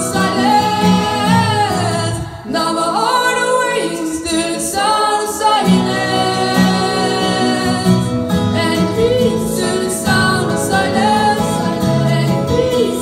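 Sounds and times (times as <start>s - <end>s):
guitar accompaniment: 0.0s - 13.0s.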